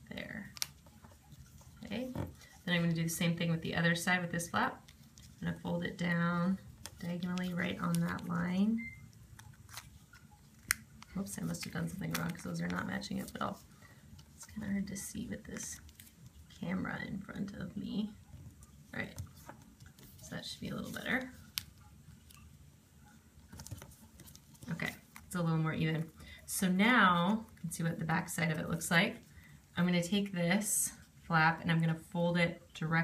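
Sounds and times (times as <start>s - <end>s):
paper rustling while folded: 4.8s - 8.6s, 9.3s - 16.8s, 18.5s - 22.5s, 23.4s - 26.1s
paper rustling and crinkling: 9.4s - 14.6s, 23.4s - 25.4s.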